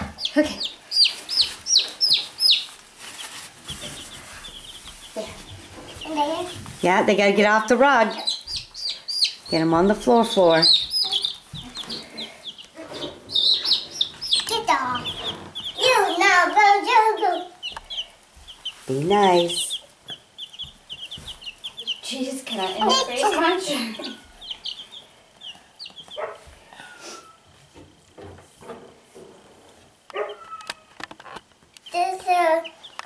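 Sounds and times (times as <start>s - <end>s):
baby chicks peeping: 0.0s - 33.0s.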